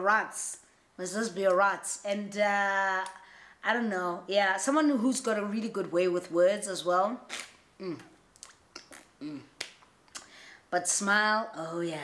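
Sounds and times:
person humming mm: 7.8s - 8.1s, 8.8s - 9.6s.

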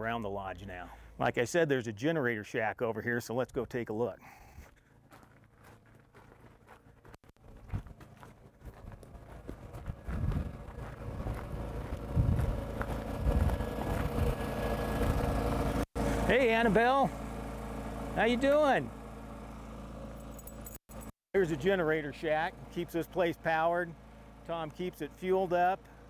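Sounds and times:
generator humming: 4.5s - 26.0s
footsteps on gravel: 4.6s - 14.4s.

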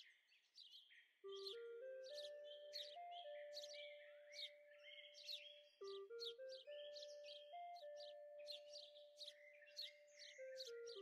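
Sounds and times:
bird chirps: 0.0s - 11.0s
soft background music: 0.7s - 11.0s.

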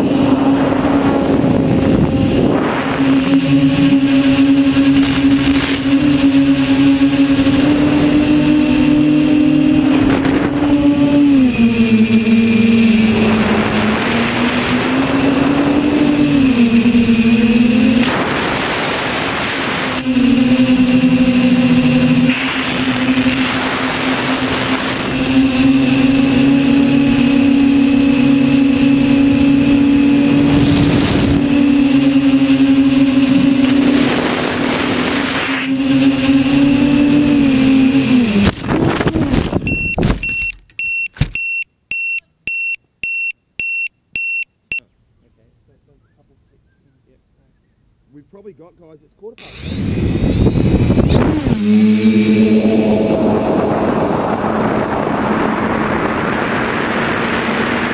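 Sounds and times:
wind on microphone: 0.0s - 40.2s, 49.4s - 57.9s
quadcopter motors humming: 0.0s - 40.5s, 48.4s - 57.9s
short high electronic beeps: 39.6s - 44.9s.

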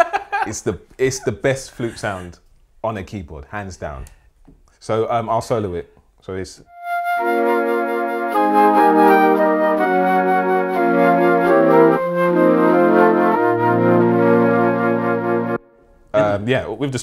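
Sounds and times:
synthesizer flute chords: 6.7s - 15.9s.

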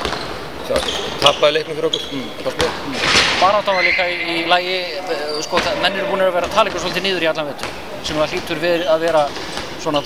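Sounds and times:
people talking: 0.7s - 10.0s
ball bouncing on hard floor: 7.6s - 7.8s.

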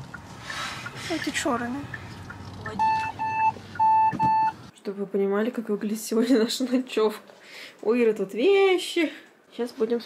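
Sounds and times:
car electronic beeps: 1.9s - 4.7s.

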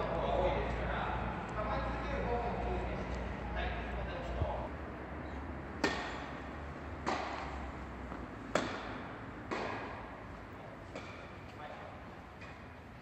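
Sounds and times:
rackets striking tennis balls: 5.8s - 12.9s.

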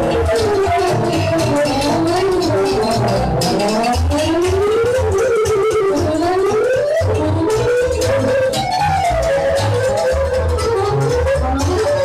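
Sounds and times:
pulsing bass beat: 0.0s - 12.0s
sliding lead melody: 0.0s - 12.0s.

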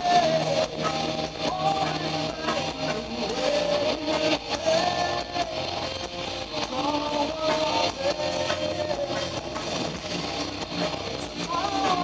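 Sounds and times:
bass guitar: 0.0s - 12.0s
drums: 0.0s - 12.0s
electric guitars: 0.0s - 12.0s.

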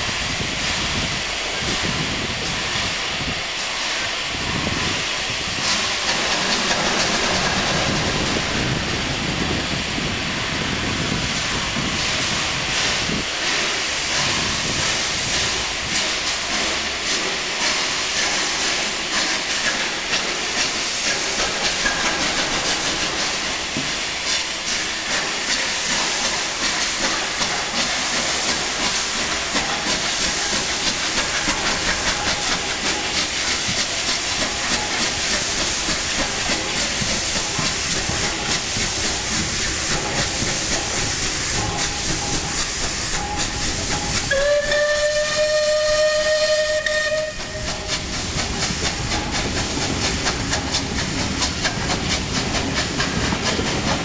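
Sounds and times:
steam hissing from cylinder cocks: 0.0s - 54.0s
steam locomotive exhaust beats: 0.0s - 54.0s
steam whistle: 43.1s - 48.0s.

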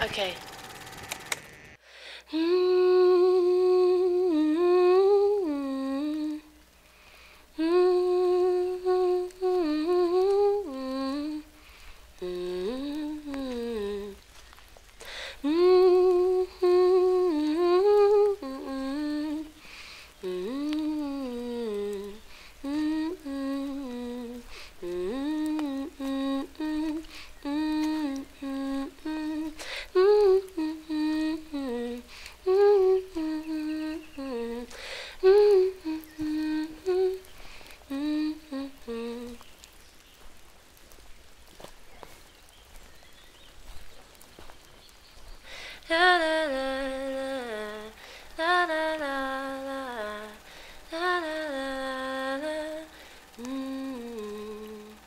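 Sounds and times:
woman humming wordless melody: 2.3s - 6.7s, 7.5s - 11.6s, 12.2s - 14.4s, 15.1s - 41.7s, 45.4s - 55.0s.

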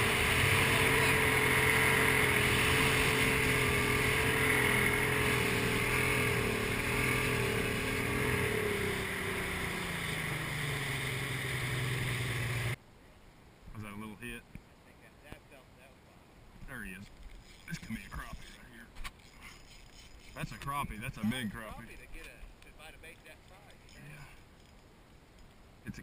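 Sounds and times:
outboard motor humming: 0.0s - 12.8s
water noise: 0.0s - 12.8s
wind: 0.0s - 26.0s.

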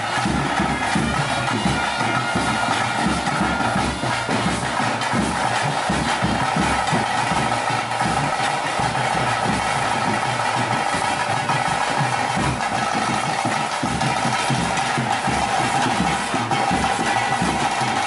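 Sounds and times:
continuous drumming: 0.0s - 18.0s.

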